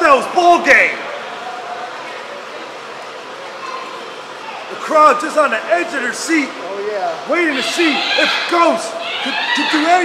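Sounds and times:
room noise hiss in a large hall: 0:00.0 - 0:10.0.

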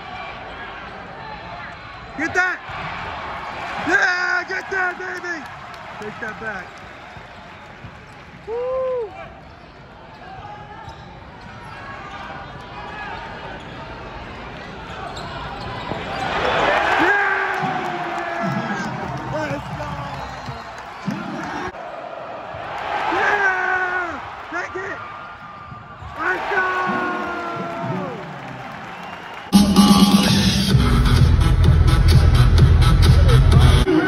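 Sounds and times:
fans shouting: 0:00.0 - 0:07.3, 0:16.2 - 0:30.7
arena crowd noise: 0:00.0 - 0:34.0.

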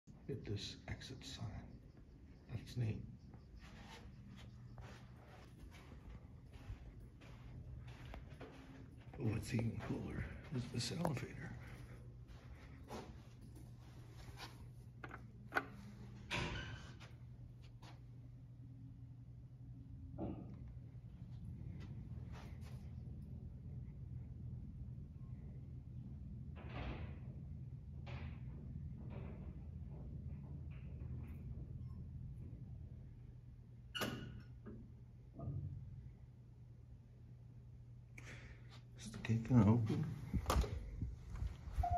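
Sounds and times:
steady low hum: 0:00.1 - 0:41.9.

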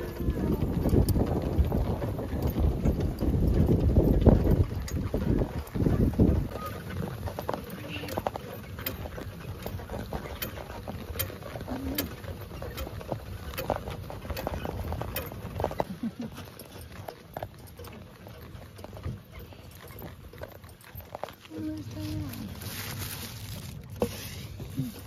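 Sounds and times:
harness fittings clinking: 0:00.0 - 0:25.0
hooves on turf: 0:00.0 - 0:25.0
low cart rumble: 0:00.0 - 0:25.0.

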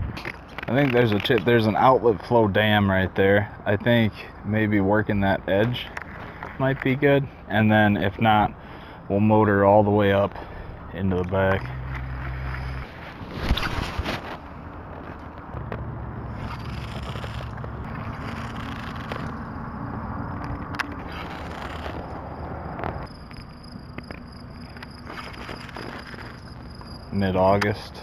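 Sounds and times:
low steady hum: 0:00.0 - 0:28.0
fishing reel cranking: 0:16.3 - 0:19.5, 0:20.8 - 0:22.1, 0:23.1 - 0:27.1.

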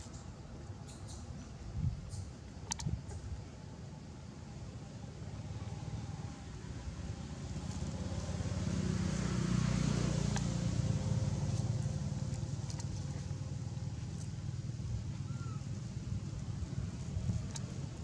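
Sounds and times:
faint clicks: 0:02.1 - 0:03.2, 0:17.3 - 0:17.8
passing motor vehicle rumble: 0:04.7 - 0:18.0.

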